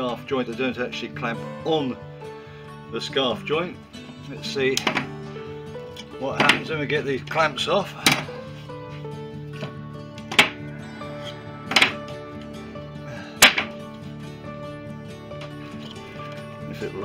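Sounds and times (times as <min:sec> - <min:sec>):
background music with held notes: 0:00.0 - 0:17.0
bar clamps clacking: 0:04.7 - 0:05.2, 0:05.9 - 0:06.7, 0:08.0 - 0:08.4, 0:09.6 - 0:10.6, 0:11.7 - 0:12.1, 0:13.4 - 0:13.8.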